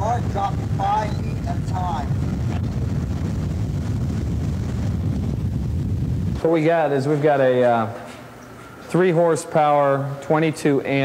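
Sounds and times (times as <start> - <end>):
strong wind buffeting microphone: 0.0 - 8.0.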